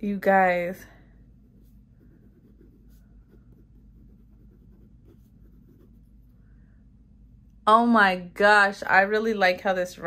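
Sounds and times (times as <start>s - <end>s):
pen scratching on paper: 1.4s - 6.3s.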